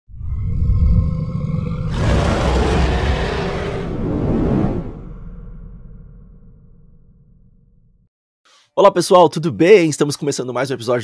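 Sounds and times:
deep rumble: 0.1s - 8.1s
loud rushing whoosh: 2.0s - 6.1s.

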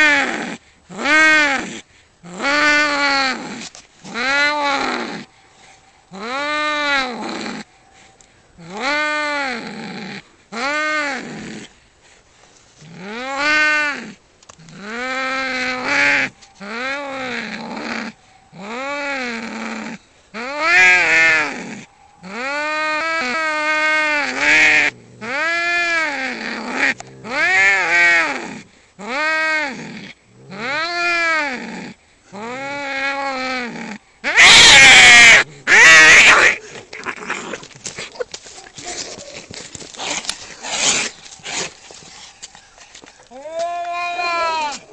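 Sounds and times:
cats yowling aggressively: 6.1s - 7.7s, 8.6s - 11.4s, 13.0s - 37.7s
cats fighting harsh outbursts: 32.4s - 37.7s.

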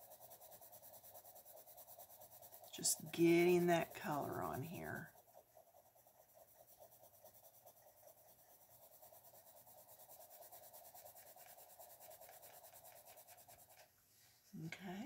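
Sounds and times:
pencil scratching on paper: 0.0s - 13.9s.

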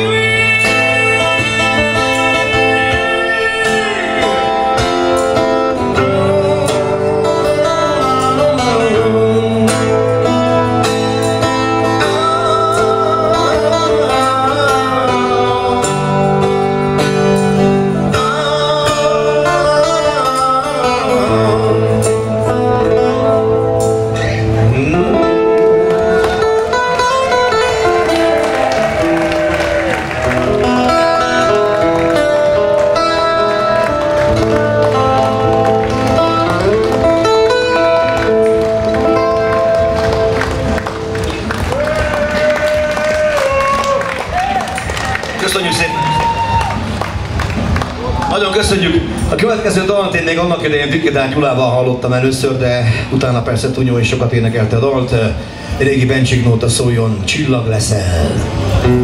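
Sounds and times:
man singing: 0.0s - 17.0s, 17.8s - 26.2s
low bass notes: 0.0s - 29.3s, 30.0s - 44.6s
acoustic guitar: 0.0s - 59.0s.

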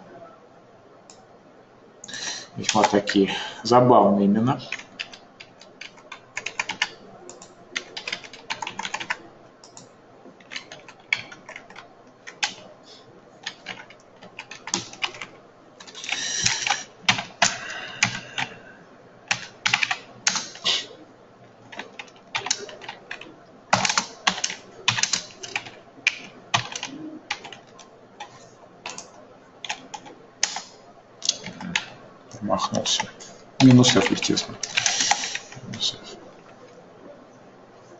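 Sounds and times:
computer keyboard typing: 2.6s - 3.1s, 4.6s - 12.7s, 13.4s - 18.5s, 19.3s - 20.7s, 21.7s - 32.0s, 32.8s - 36.0s.

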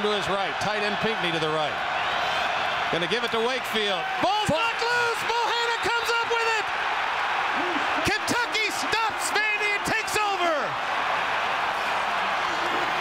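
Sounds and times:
stadium crowd cheering: 0.0s - 13.0s
excited shouting voices: 0.1s - 13.0s.

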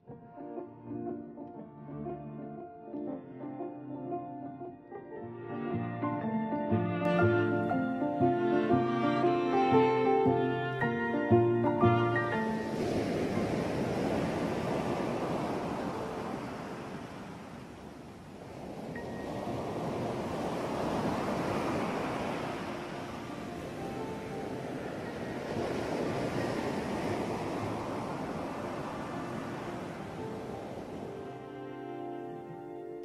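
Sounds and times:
ocean surf breaking: 7.1s - 32.7s.

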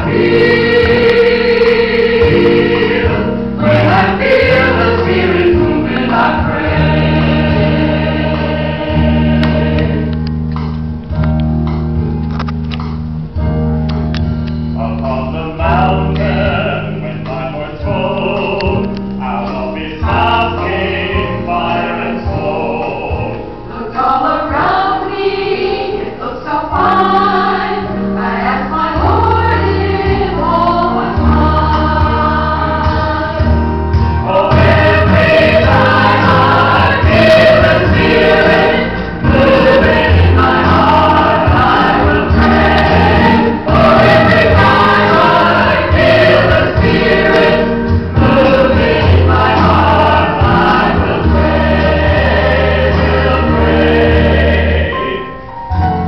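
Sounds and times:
choir singing gospel song: 0.0s - 10.2s, 14.8s - 56.0s.

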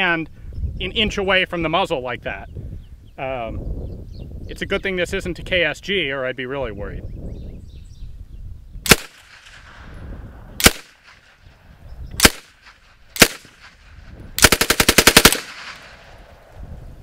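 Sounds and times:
automatic gunfire burst: 8.9s - 9.6s, 10.6s - 11.0s, 12.2s - 13.8s, 14.4s - 16.2s
submachine gun single shots: 8.9s - 9.9s, 10.6s - 11.4s, 12.2s - 16.4s.

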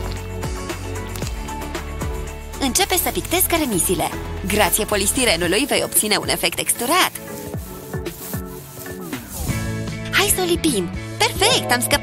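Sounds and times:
background music: 0.0s - 12.0s
paintbrush scrubbing foam: 3.4s - 9.8s.

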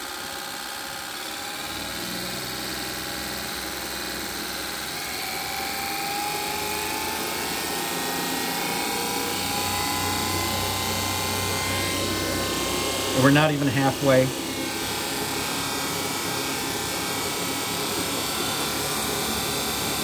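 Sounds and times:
electric motor whirring: 0.0s - 20.0s.

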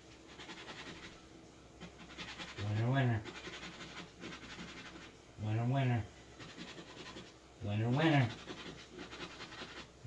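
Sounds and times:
scratching a lottery ticket: 0.3s - 1.2s, 1.8s - 5.1s, 6.4s - 10.0s.

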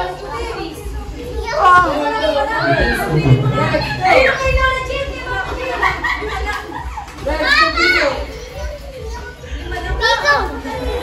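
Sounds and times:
children's voices and chatter: 0.0s - 11.0s.

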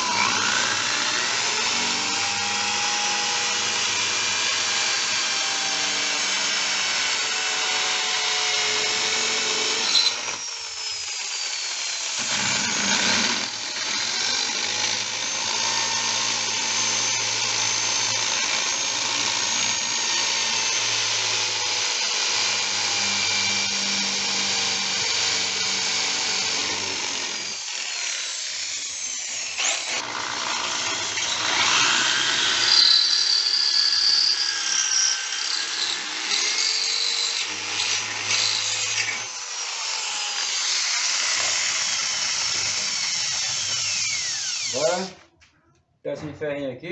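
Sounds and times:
electric drill boring: 0.0s - 45.2s.

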